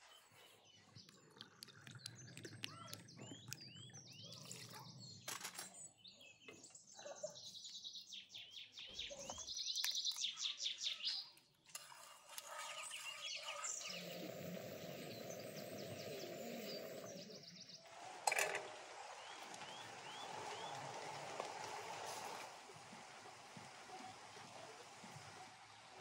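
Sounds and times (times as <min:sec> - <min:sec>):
birds chirping: 0:00.0 - 0:18.1, 0:18.7 - 0:26.0.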